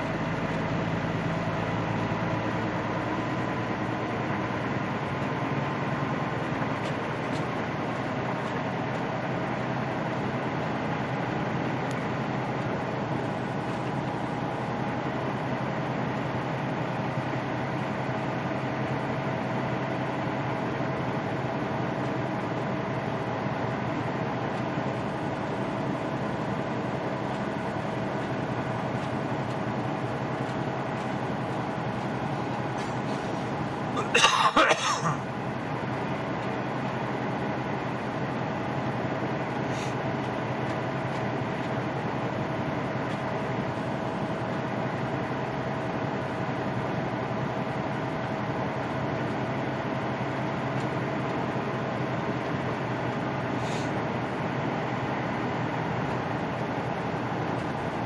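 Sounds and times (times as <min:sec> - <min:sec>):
diesel truck engine drone: 0:00.0 - 0:58.0.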